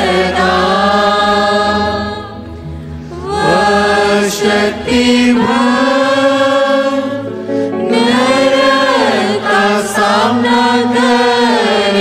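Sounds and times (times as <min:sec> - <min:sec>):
choir singing a hymn: 0:00.0 - 0:12.0
music: 0:00.0 - 0:12.0.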